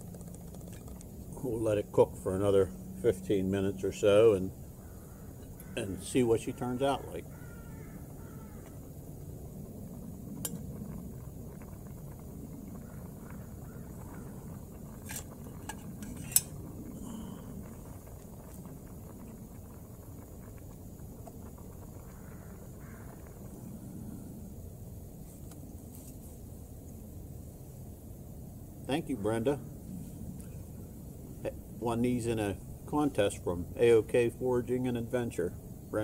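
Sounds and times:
low steady rumble: 0:00.0 - 0:36.0
metal cup clinking: 0:15.0 - 0:16.6.

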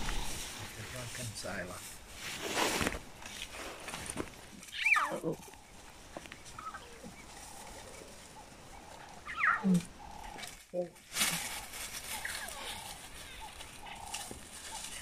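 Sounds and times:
lions calling: 0:00.0 - 0:00.6, 0:04.6 - 0:05.8, 0:06.5 - 0:15.0.

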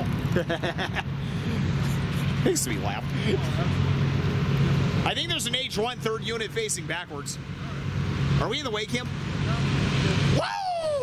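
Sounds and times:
diesel locomotive engine drone: 0:00.0 - 0:11.0.

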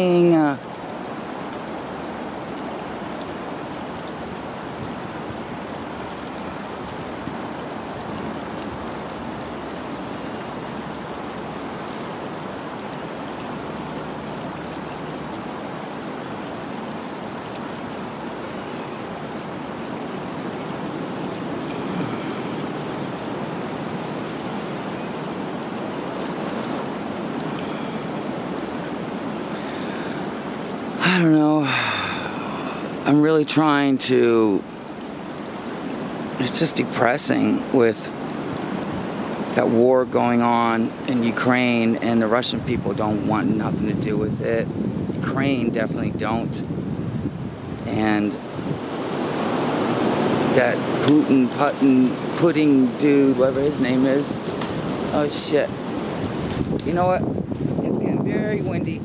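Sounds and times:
wind rushing through woodland: 0:00.0 - 0:59.0.

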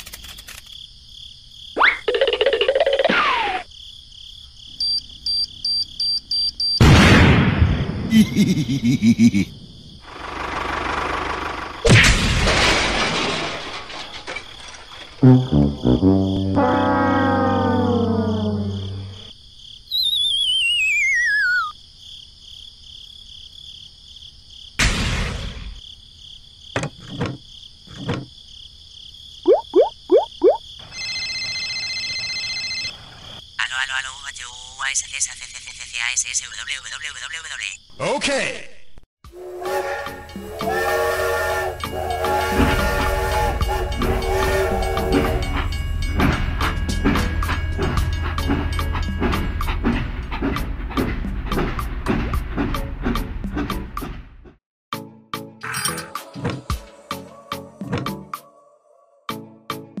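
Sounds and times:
high chirping insect-like background: 0:00.0 - 0:06.8, 0:08.0 - 0:10.3, 0:14.4 - 0:24.8, 0:25.8 - 0:38.0
long falling whistle: 0:19.9 - 0:21.7
sharp crash: 0:24.8 - 0:25.8.

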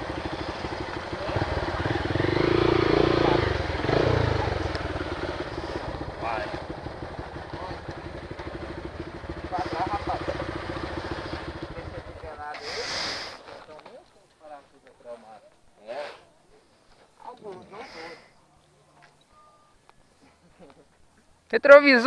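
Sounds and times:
motorcycle engine idling: 0:00.0 - 0:12.8.

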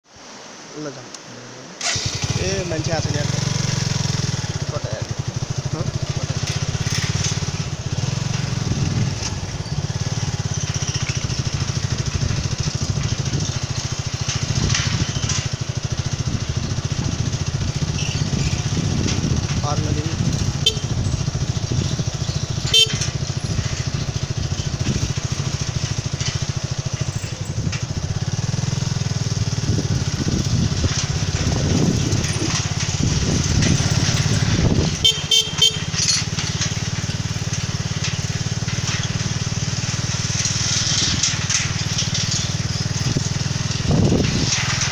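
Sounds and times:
motorcycle engine running: 0:01.8 - 0:44.9
sharp clatters: 0:01.8 - 0:44.9
wind rushing over microphone: 0:02.2 - 0:35.1, 0:42.6 - 0:44.9.

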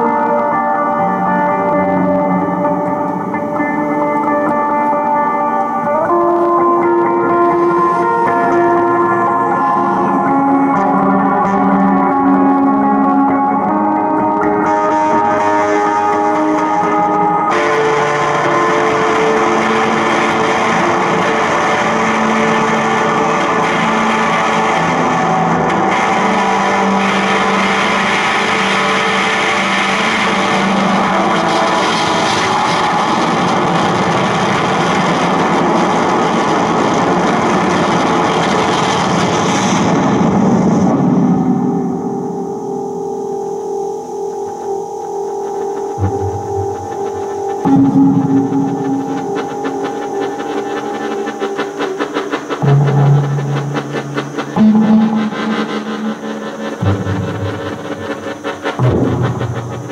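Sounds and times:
distorted electronic noise: 0:00.0 - 0:59.9.

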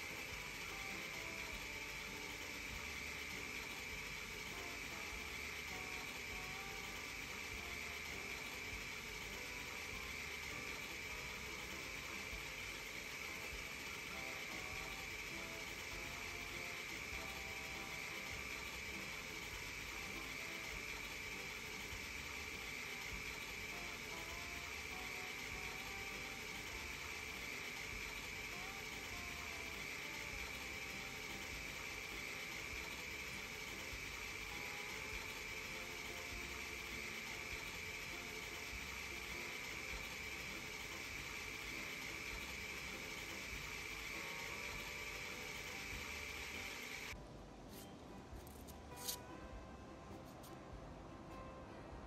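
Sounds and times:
high-pitched whine: 0:00.0 - 0:47.2
steady hiss: 0:00.0 - 0:49.3.

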